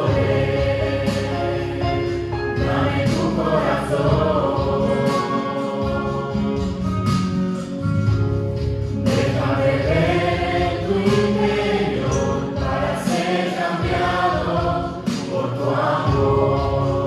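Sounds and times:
group singing worship song: 0.0 - 7.8, 8.9 - 17.0.

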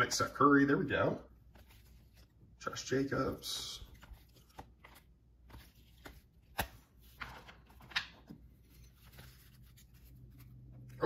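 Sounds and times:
cards rustling and flicking: 1.4 - 11.0
card snaps: 6.0 - 6.8.

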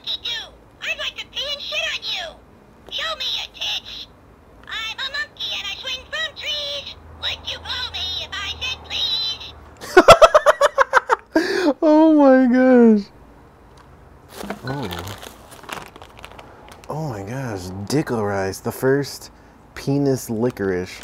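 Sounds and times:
toy recorded voice lines: 0.0 - 9.6.

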